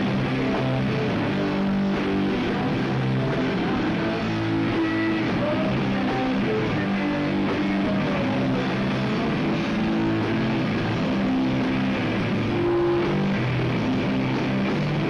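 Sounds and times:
rock band playing live: 0:00.0 - 0:15.0.

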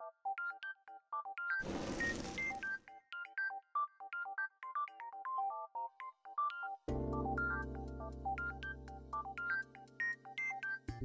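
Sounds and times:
burst of noise: 0:01.6 - 0:02.7.

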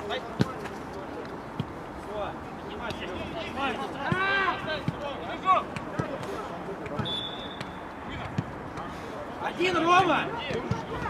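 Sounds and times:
outdoor match noise: 0:00.0 - 0:11.0.

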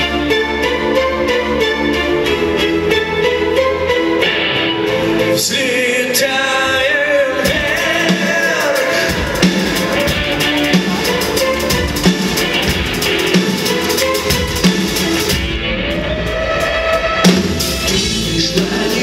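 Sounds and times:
drum kit beat: 0:07.4 - 0:19.0.

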